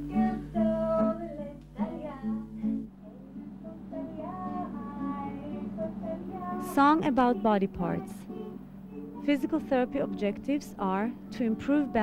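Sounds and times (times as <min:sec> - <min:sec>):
person singing slow song: 0:00.0 - 0:10.2
acoustic guitar: 0:00.0 - 0:12.0.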